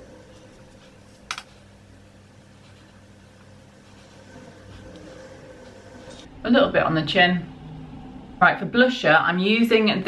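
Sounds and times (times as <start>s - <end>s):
steady low hum: 0.0s - 10.0s.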